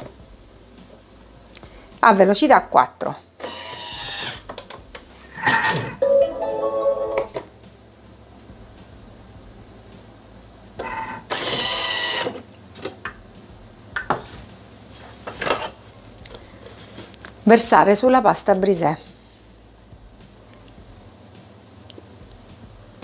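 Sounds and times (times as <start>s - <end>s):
food processor motor whirring: 3.4s - 4.4s, 10.8s - 12.4s.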